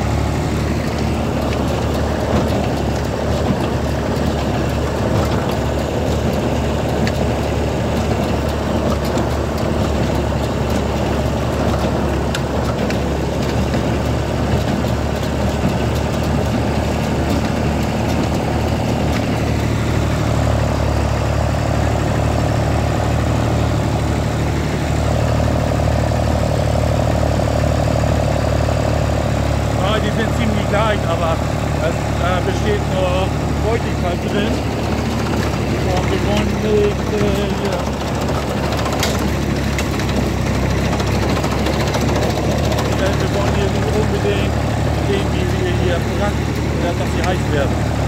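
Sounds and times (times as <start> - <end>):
tractor diesel engine running: 0.0 - 48.0.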